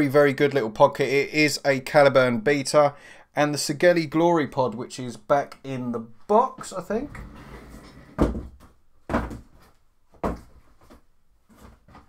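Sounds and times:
boxes thumping: 8.1s - 12.0s.

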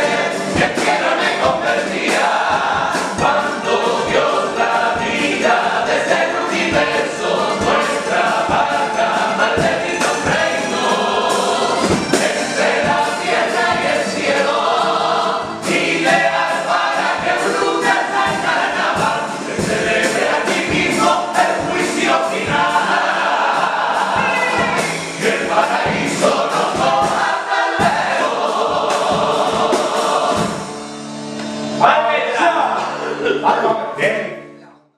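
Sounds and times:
male choir singing: 0.0s - 30.7s
guitar accompaniment: 0.0s - 34.9s.

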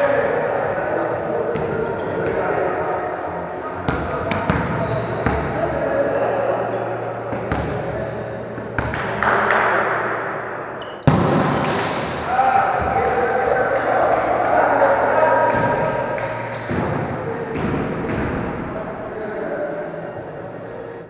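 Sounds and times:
players chattering: 0.0s - 21.0s.

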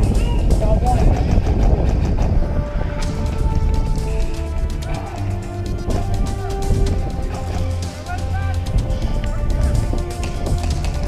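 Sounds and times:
loud low rumble on microphone: 0.0s - 11.0s.

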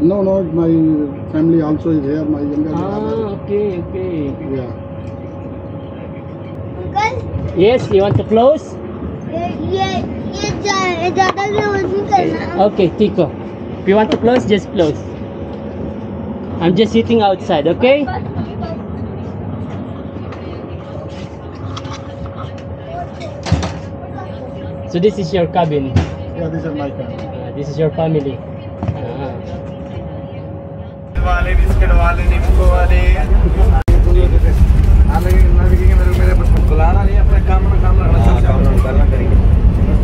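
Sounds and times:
constant hum: 0.0s - 40.0s
faint voices: 0.0s - 40.0s
train carriage rumble: 0.0s - 40.0s.

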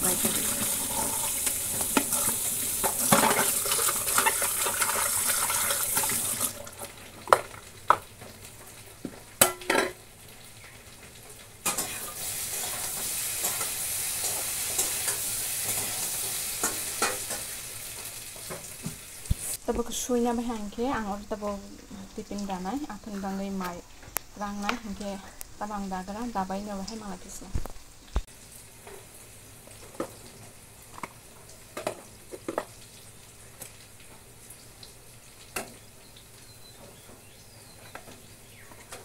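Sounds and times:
food sizzling in a pot: 0.0s - 39.0s.

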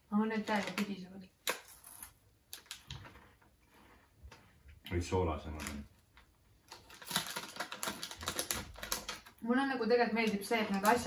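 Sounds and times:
foil snack bag crinkling: 6.7s - 9.3s.

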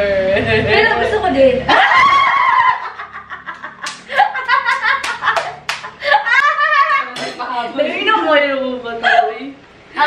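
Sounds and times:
women laughing: 1.7s - 7.4s
sharp hand claps: 3.5s - 6.0s.

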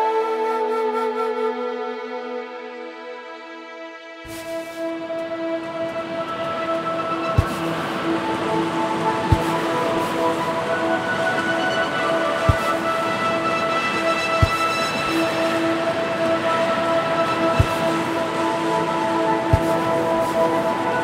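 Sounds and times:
wind and surf rushing: 7.2s - 21.0s.

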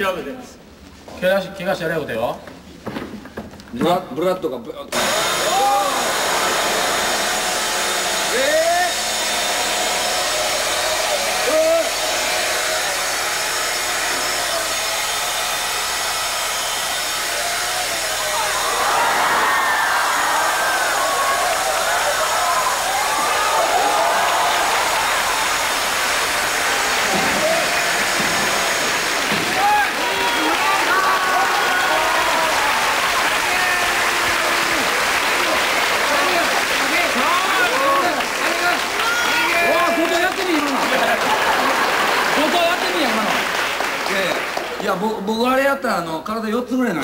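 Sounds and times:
chainsaws running: 4.9s - 44.7s
rising and falling pitched sounds: 16.2s - 36.0s.

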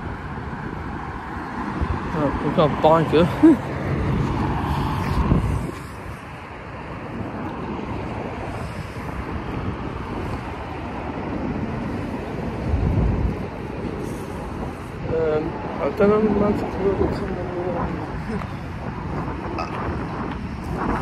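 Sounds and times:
low wind rumble: 0.0s - 21.0s
road noise: 0.0s - 21.0s
vehicle passing: 0.0s - 21.0s
wind buffeting microphone: 0.0s - 21.0s.

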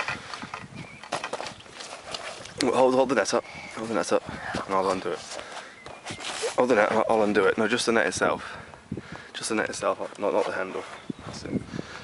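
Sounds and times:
net and mat rustling: 1.0s - 7.5s.

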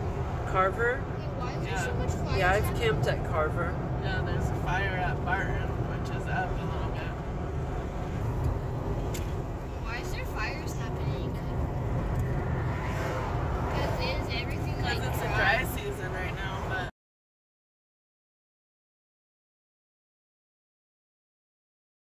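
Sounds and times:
road and engine rumble in car: 0.0s - 16.9s
indistinct talking: 12.7s - 16.9s.

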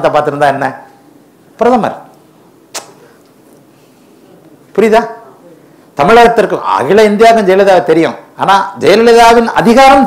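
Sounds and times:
short sharp click: 2.7s - 3.0s
man speaking: 4.7s - 10.0s.

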